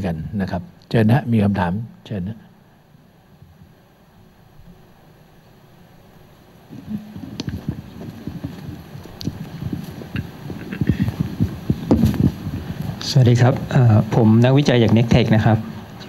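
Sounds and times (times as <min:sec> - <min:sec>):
microphone handling noise: 0:06.7 - 0:15.9.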